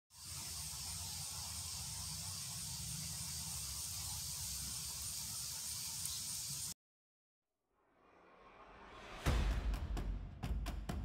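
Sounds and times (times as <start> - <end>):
high-pitched hiss: 0.1 - 6.8.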